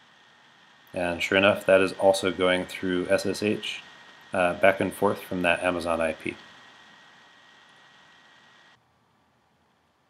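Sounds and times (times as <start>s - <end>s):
thin high whine: 0.0s - 10.0s.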